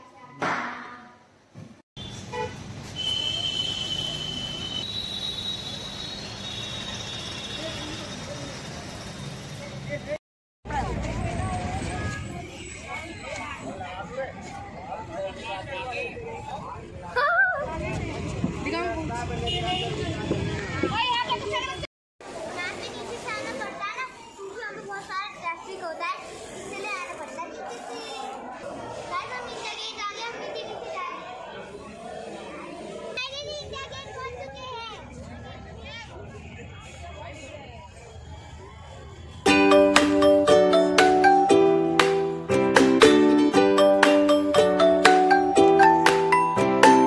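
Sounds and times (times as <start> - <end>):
steady traffic noise: 1.3 - 42.5.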